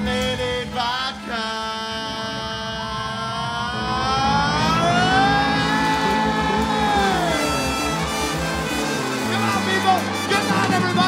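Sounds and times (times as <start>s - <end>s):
bass guitar: 0.0s - 11.0s
singer holding wailing note: 1.6s - 10.7s
drums: 4.9s - 11.0s.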